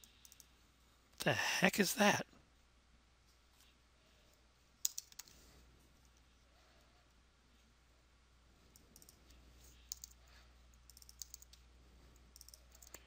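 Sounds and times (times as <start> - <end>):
computer keyboard and mouse clicks: 9.9 - 10.2, 10.9 - 11.6.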